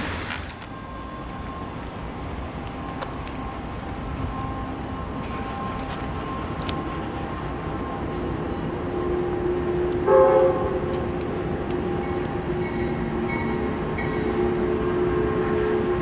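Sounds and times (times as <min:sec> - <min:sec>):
locomotive air horn: 0:06.9 - 0:11.2, 0:11.8 - 0:16.0.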